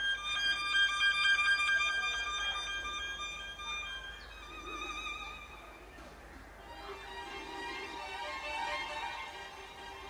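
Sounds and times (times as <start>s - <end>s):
violin pulsing sustained notes: 0.0s - 6.0s, 6.6s - 10.0s.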